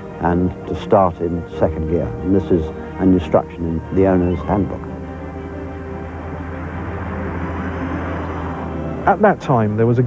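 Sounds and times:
background music: 0.0s - 10.0s
car engine driving past: 2.1s - 9.5s.

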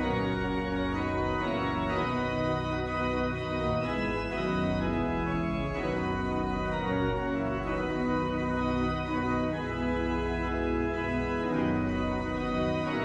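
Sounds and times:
church organ sustained chords: 0.0s - 13.0s.

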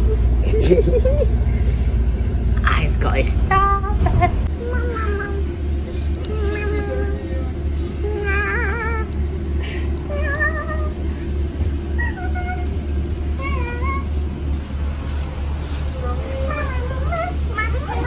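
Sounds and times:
bus engine rumble: 0.0s - 18.0s.

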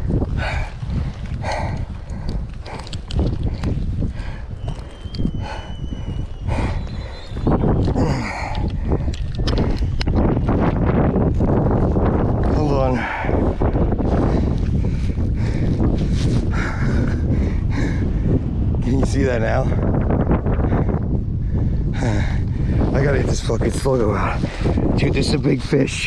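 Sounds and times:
microphone handling noise: 0.0s - 17.5s
wind: 0.0s - 26.0s.

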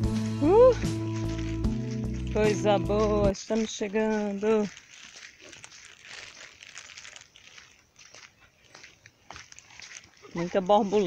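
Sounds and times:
dry scrub rustling: 0.0s - 11.0s
footsteps on dirt trail: 0.0s - 11.0s.

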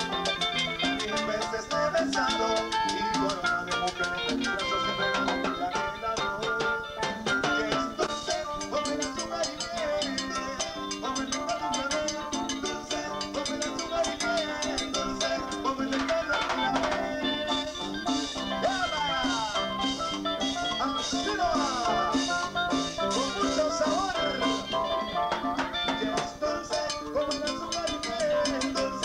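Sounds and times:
electric guitar melody: 0.0s - 29.0s
percussion beat and bass: 0.0s - 29.0s.

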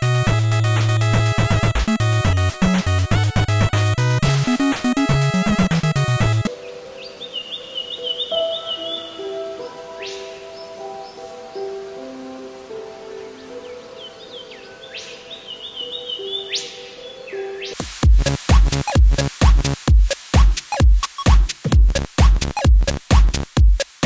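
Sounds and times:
loud music: 0.0s - 6.5s, 17.8s - 24.0s
soft sustained music notes: 0.1s - 17.8s
hummingbird chirping: 6.6s - 11.8s, 13.0s - 17.8s.

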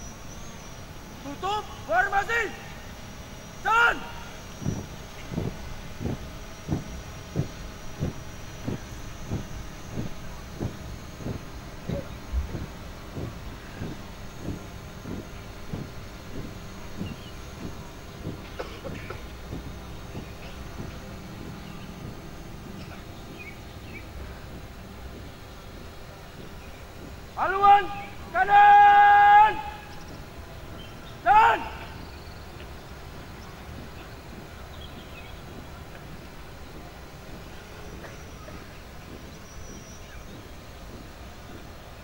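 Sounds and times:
marching footsteps thudding: 3.6s - 42.0s.

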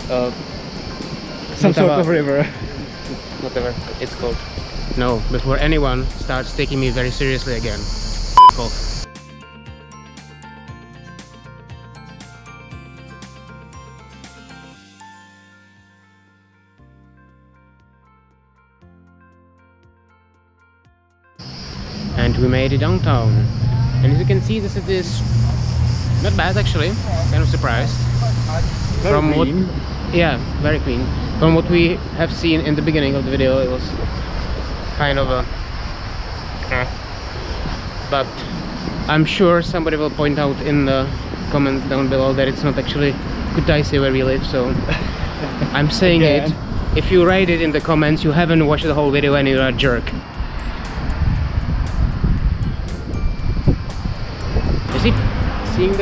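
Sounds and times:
even hiss: 0.0s - 9.1s, 21.4s - 56.0s
background music: 0.0s - 56.0s
electronic beep tone: 6.7s - 9.1s
outdoor background noise: 21.4s - 56.0s
man saying eh: 26.3s - 29.8s, 45.6s - 47.4s.

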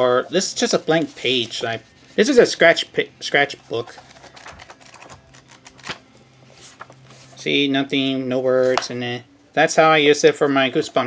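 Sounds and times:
notebook pages flipping: 0.6s - 2.5s, 3.6s - 7.4s.

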